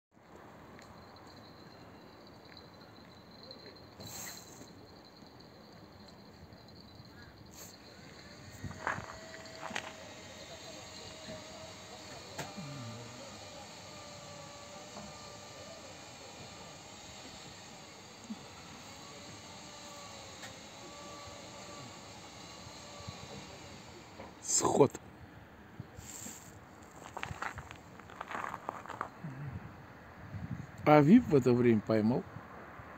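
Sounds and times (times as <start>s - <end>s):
quiet waterside ambience: 0.2s - 32.9s
faint wavering distant tone: 0.6s - 20.1s.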